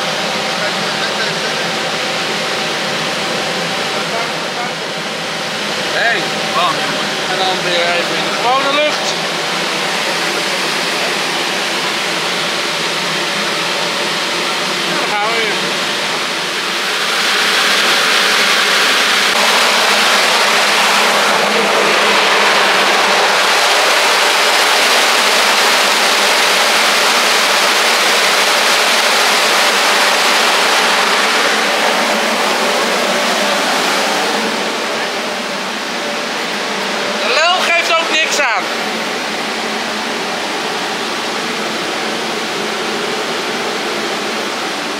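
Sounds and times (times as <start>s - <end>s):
large fan rushing air: 0.0s - 44.9s.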